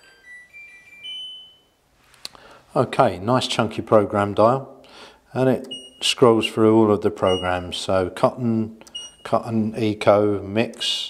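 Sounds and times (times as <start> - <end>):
rising electronic beep melody: 0.0 - 1.7.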